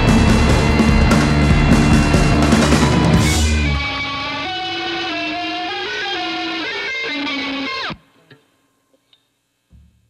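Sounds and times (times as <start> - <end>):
distorted electric guitar: 0.0 - 8.6.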